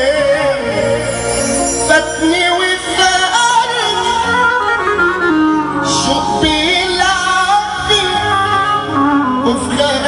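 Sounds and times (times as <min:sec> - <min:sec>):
loud party music: 0:00.0 - 0:10.0
man singing into a microphone: 0:00.0 - 0:10.0.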